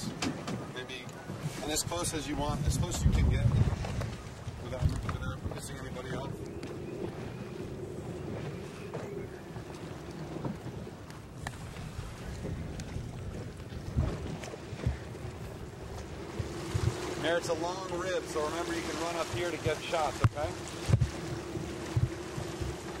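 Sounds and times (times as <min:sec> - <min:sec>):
water washing along boat hull: 0:00.0 - 0:23.0
wind buffeting microphone: 0:01.2 - 0:23.0
steady engine hum: 0:05.4 - 0:23.0
low thumps: 0:12.4 - 0:23.0.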